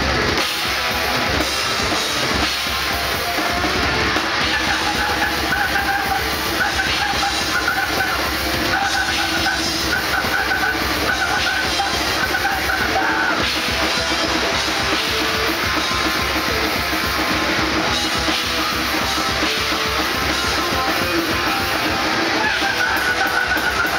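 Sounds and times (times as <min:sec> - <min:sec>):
distorted electric guitar: 0:00.0 - 0:23.9
drum kit: 0:00.0 - 0:23.9.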